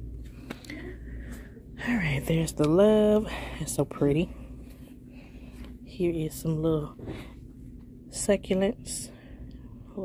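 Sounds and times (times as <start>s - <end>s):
low hum of shop background: 0.0s - 10.0s
soft breath: 0.2s - 1.8s, 3.2s - 5.9s.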